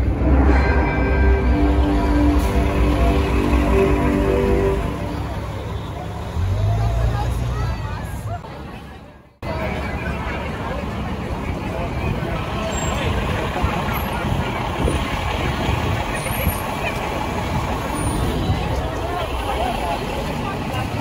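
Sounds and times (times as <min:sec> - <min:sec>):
crowd chatter: 0:00.0 - 0:21.0
traffic rumble: 0:00.0 - 0:21.0.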